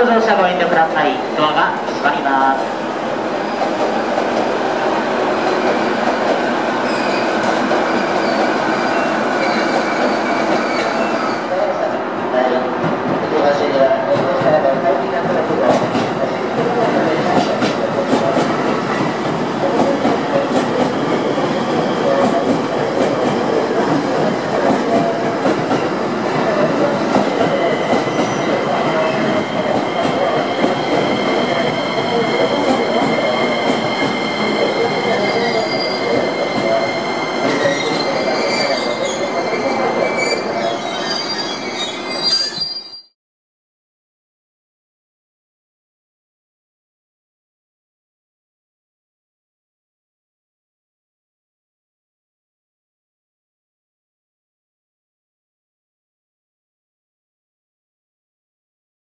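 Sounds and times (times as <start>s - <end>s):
high brake squeal: 6.8s - 11.5s, 35.2s - 36.2s, 37.2s - 43.2s.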